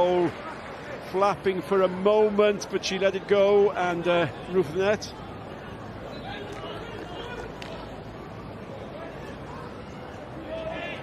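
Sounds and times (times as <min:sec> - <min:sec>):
stadium crowd murmur: 0:00.0 - 0:11.0.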